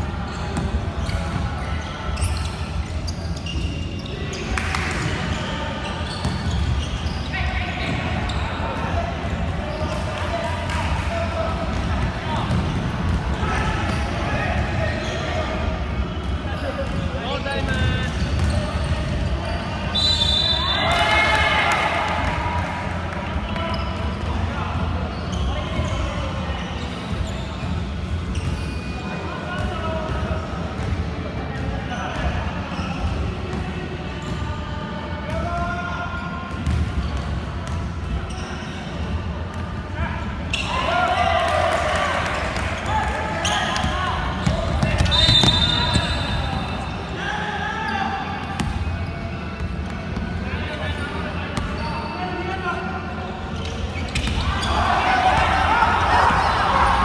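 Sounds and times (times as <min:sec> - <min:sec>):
players calling out: 0:40.5 - 0:48.9, 0:53.6 - 0:57.0.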